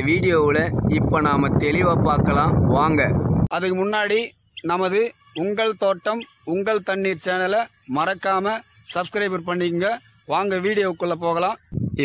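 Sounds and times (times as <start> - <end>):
man speaking: 0.0 - 12.0
insects chirring: 3.5 - 11.8.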